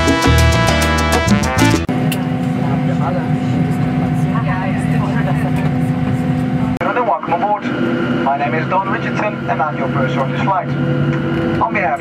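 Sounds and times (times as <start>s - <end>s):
airliner cabin hum: 1.4s - 6.8s.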